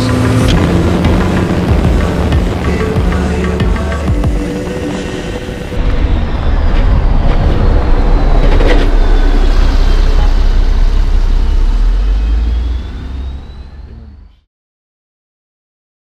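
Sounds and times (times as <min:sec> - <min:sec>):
faint whine: 0:00.0 - 0:14.4
bus engine rumble: 0:00.0 - 0:14.5
road noise: 0:00.0 - 0:14.5.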